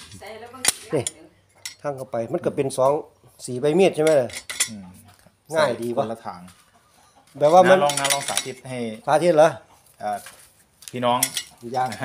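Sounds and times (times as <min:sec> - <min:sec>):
steel parts clinking: 0:00.6 - 0:01.8, 0:04.0 - 0:04.7, 0:07.4 - 0:08.6, 0:11.1 - 0:12.0.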